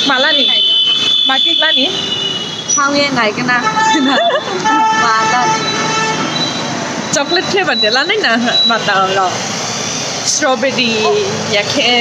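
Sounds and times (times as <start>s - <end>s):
women chattering: 10.3s - 12.0s.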